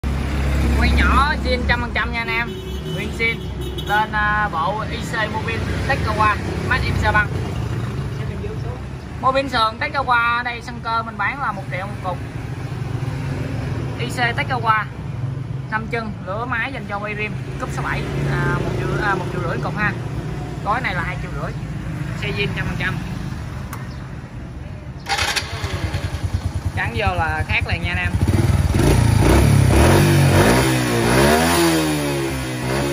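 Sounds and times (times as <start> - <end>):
motorcycle engine idling: 25.0 - 29.2.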